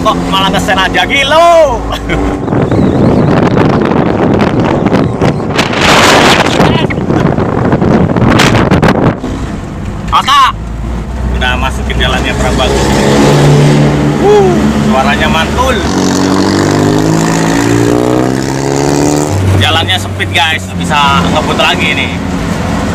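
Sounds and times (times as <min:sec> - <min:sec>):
vehicle engine hum: 0:00.0 - 0:22.9
wind and road rush: 0:00.0 - 0:22.9.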